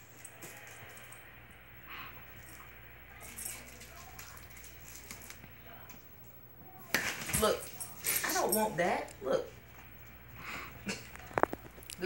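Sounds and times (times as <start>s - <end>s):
collar tags jingling: 2.2s - 5.2s, 7.3s - 9.1s.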